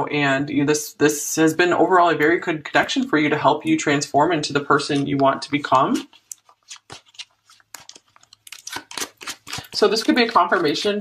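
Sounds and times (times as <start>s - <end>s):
cards being shuffled: 6.0s - 10.9s.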